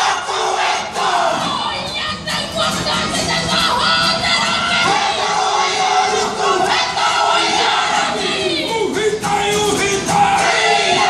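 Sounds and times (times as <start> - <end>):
group chanting and calling out: 0.0 - 11.0.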